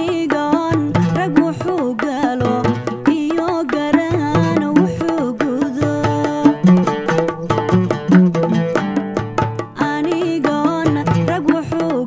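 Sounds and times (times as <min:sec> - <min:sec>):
woman singing: 0:00.0 - 0:07.3, 0:09.7 - 0:12.0
steady drum beat: 0:00.0 - 0:12.0.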